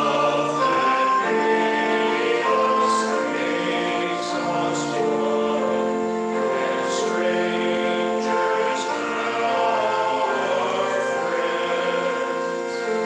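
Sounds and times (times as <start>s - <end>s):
congregation singing a hymn: 0.0s - 13.0s
sustained accompaniment: 0.0s - 13.0s.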